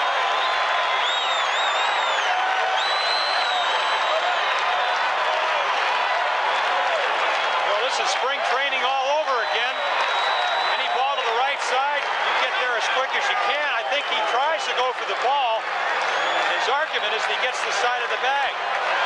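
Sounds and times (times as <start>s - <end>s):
stadium crowd roaring: 0.0s - 19.0s.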